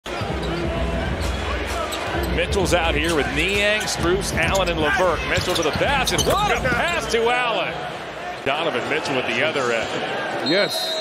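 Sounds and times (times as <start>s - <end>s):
arena crowd murmur: 0.1s - 11.0s.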